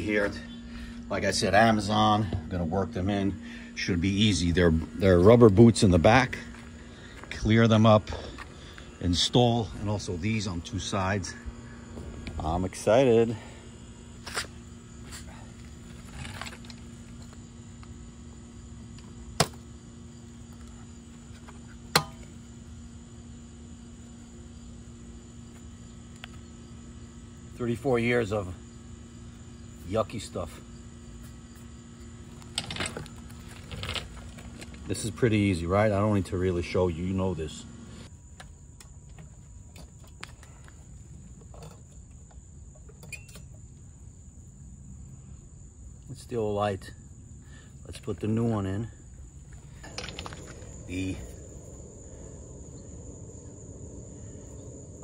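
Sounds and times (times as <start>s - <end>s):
high insect trill: 0.0s - 55.0s
steady low hum: 0.0s - 55.0s.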